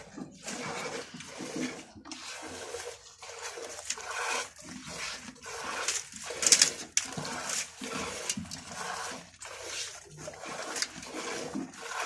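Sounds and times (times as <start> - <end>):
milk squirting into bucket: 0.0 - 12.0.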